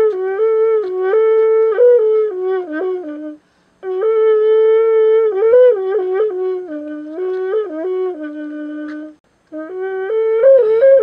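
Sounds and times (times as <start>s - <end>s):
bamboo wind instrument buzzy notes: 0.0s - 11.0s.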